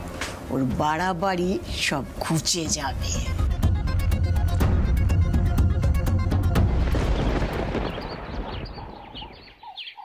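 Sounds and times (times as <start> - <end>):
background music: 0.0 - 7.8.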